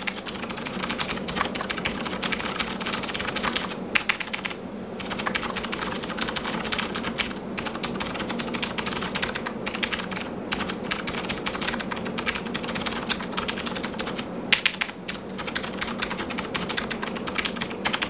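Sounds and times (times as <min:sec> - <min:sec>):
fast typing on mechanical keyboard: 0:00.0 - 0:18.0.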